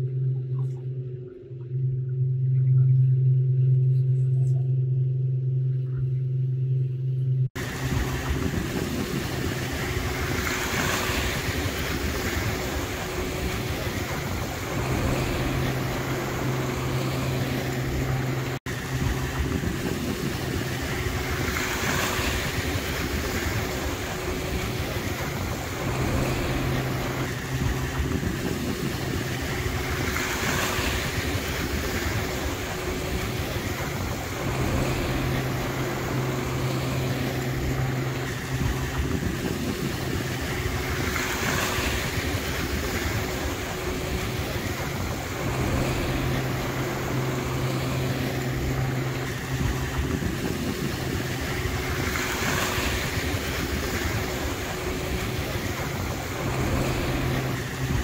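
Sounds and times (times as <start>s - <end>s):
low motor hum: 0.0s - 58.0s
water noise: 0.0s - 58.0s
wind: 0.0s - 58.0s.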